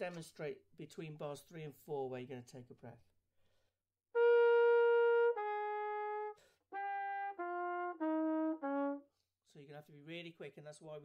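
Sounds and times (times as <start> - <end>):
quick breath: 3.4 - 3.8
trumpet playing slow notes: 4.1 - 9.1.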